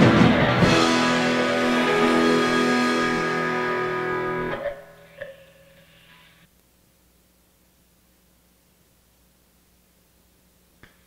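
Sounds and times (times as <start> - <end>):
electric guitar chord ringing: 0.0 - 5.6.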